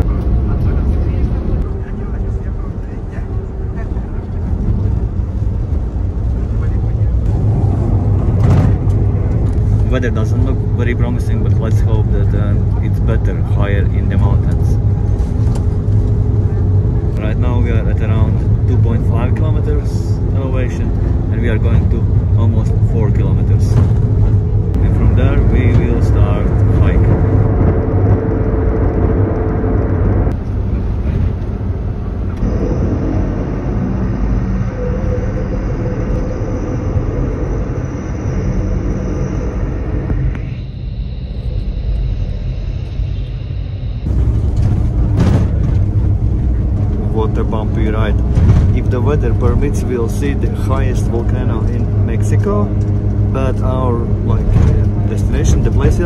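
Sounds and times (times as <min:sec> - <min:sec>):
people talking: 0:00.0 - 0:05.2, 0:06.4 - 0:07.4, 0:09.8 - 0:14.8, 0:17.2 - 0:23.9, 0:24.8 - 0:27.2, 0:46.9 - 0:52.7, 0:53.3 - 0:56.0
van engine and tyre rumble: 0:00.0 - 0:56.0.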